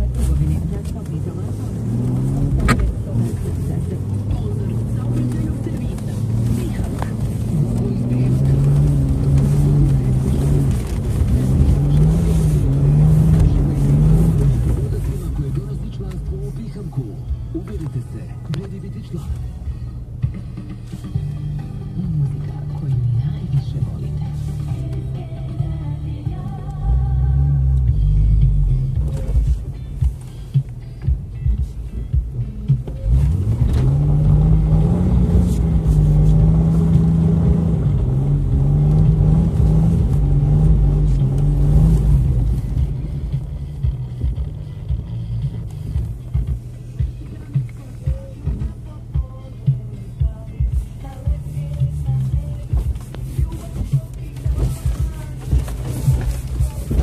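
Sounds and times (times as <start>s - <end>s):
car engine on rough track: 0.0s - 57.0s
car radio talk and music: 0.0s - 57.0s.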